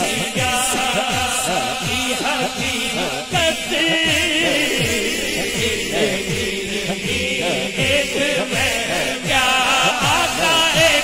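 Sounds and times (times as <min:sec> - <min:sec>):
low pulsing beat: 0:00.0 - 0:11.0
man singing melismatically: 0:00.0 - 0:11.0
men chanting along: 0:00.0 - 0:11.0.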